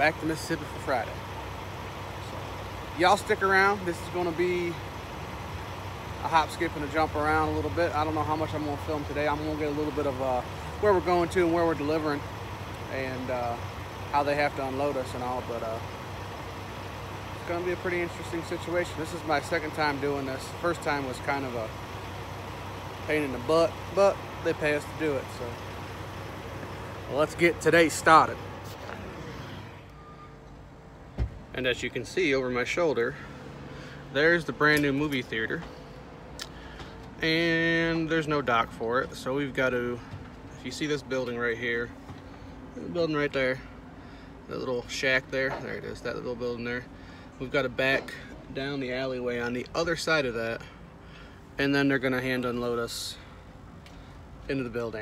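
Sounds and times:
diesel truck engine idling: 0:00.0 - 0:55.0
faint high beep: 0:29.7 - 0:30.6.

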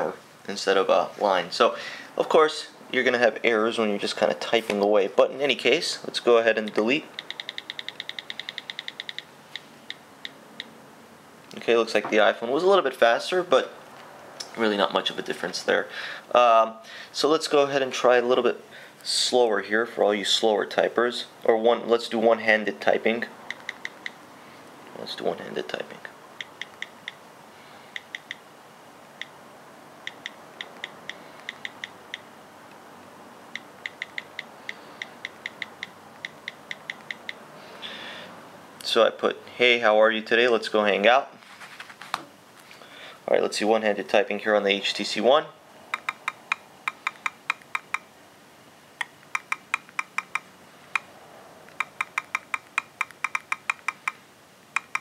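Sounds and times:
touchscreen keyboard clicks: 0:06.7 - 0:09.3, 0:23.5 - 0:24.2, 0:26.4 - 0:27.2, 0:28.0 - 0:28.4, 0:30.1 - 0:32.2, 0:33.6 - 0:37.4, 0:45.9 - 0:48.0, 0:49.0 - 0:51.1, 0:51.7 - 0:54.2, 0:54.8 - 0:55.0.

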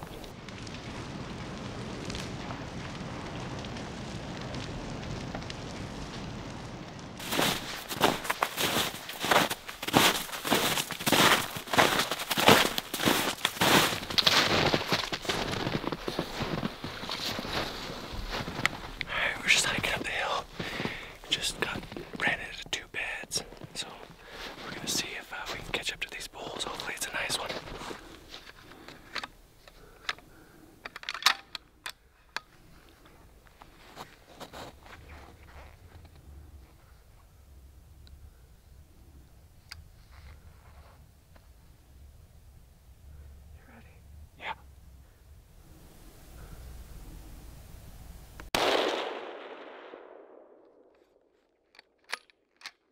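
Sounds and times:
steady hiss: 0:00.0 - 0:30.9
boots crunching through snow: 0:07.2 - 0:19.0.

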